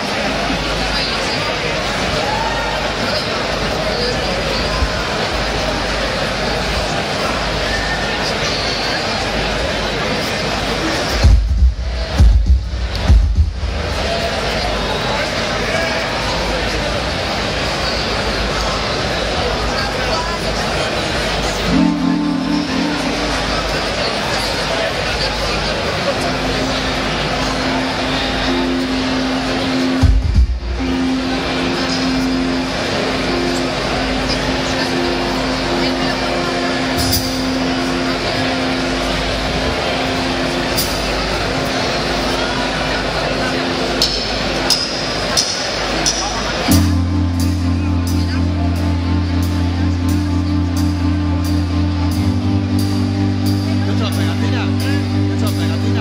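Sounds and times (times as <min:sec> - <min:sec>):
sustained low keyboard notes: 0:00.0 - 0:56.0
live rock band playing: 0:21.6 - 0:24.8, 0:25.9 - 0:56.0.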